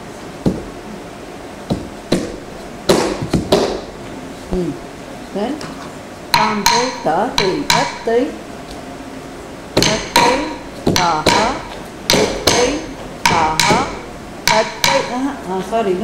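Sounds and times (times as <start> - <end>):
wooden stick striking wooden board: 1.7 - 3.9, 6.3 - 8.1, 9.8 - 15.2.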